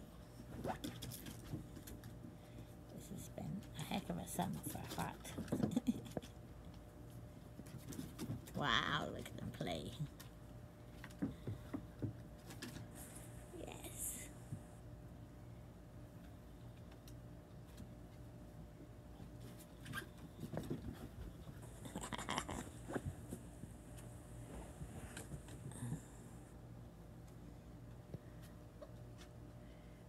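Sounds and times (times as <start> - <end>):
paws and claws tapping on boards: 10.9 - 12.9.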